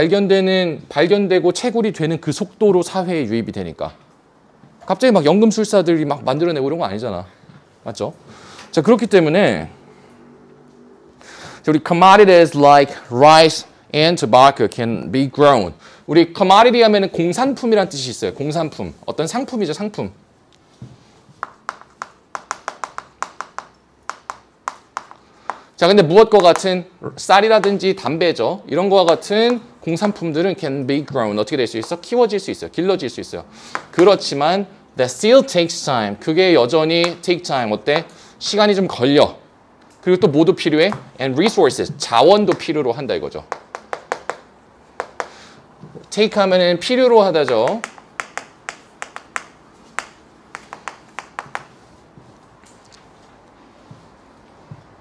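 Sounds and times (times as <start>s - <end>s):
chalk tapping on chalkboard: 21.3s - 25.7s, 26.3s - 26.7s, 33.7s - 34.0s, 43.5s - 45.4s, 47.4s - 51.8s.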